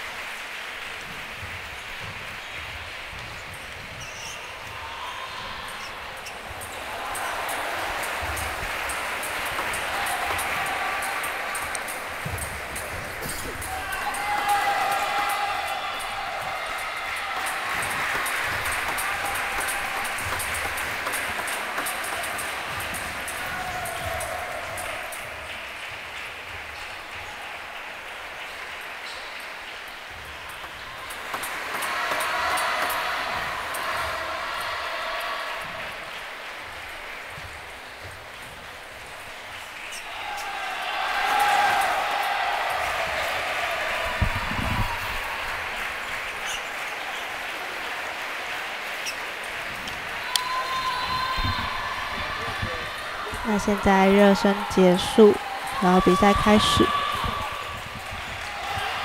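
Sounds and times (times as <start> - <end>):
crowd of voices: 0.0 - 59.0
table tennis balls clicking: 17.1 - 25.4.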